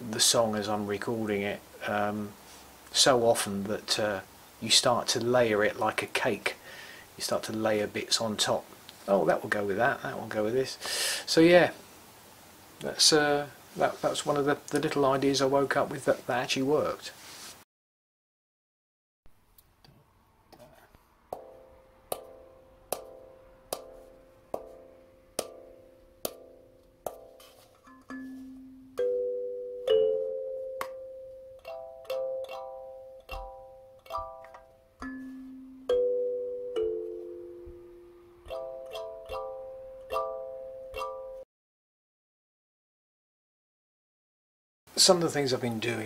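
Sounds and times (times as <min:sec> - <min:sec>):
kalimba plucked notes: 0:21.4 - 0:41.4.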